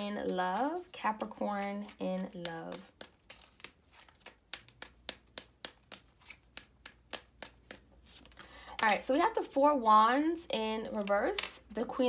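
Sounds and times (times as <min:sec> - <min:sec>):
cards being shuffled: 0:00.0 - 0:09.6, 0:10.7 - 0:12.0.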